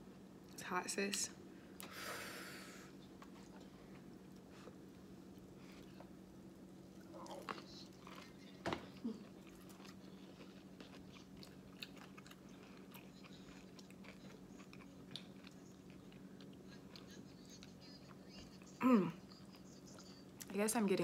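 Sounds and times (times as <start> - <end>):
steady low hum: 0.0 - 21.0
chewing food: 3.0 - 20.5.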